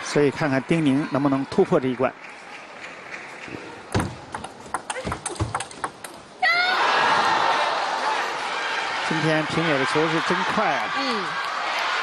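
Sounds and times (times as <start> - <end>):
table tennis ball clicks: 4.3 - 6.2
crowd cheering: 6.4 - 12.0.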